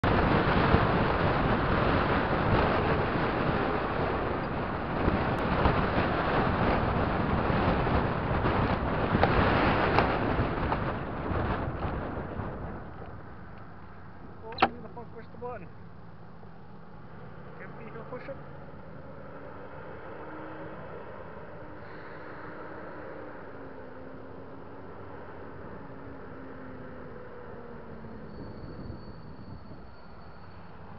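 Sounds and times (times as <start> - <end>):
car road and wind noise: 0.0 - 30.9
sharp click: 14.5 - 14.9.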